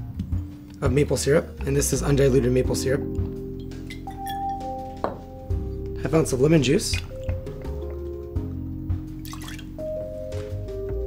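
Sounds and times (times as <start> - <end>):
background music: 0.0 - 11.0
juice pouring and dripping: 5.9 - 8.5, 9.1 - 10.0.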